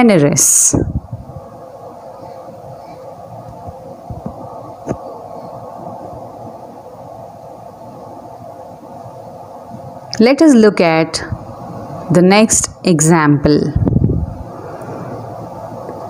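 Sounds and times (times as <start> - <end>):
room background hum: 0.0 - 16.0.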